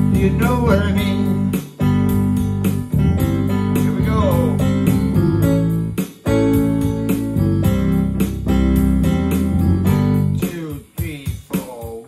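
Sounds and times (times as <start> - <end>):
electronic keyboard band music: 0.0 - 12.0.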